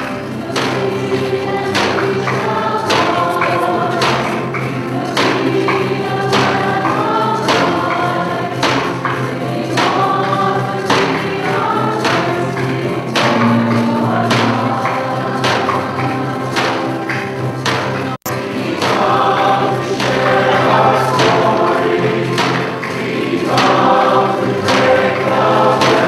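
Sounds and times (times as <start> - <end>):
choir and congregation singing hymn: 0.0 - 26.0
steady percussion beat: 0.0 - 26.0.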